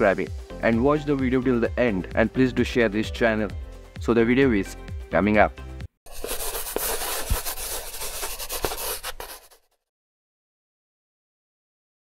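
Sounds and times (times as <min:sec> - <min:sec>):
pencil scratching on paper: 0:06.1 - 0:09.7.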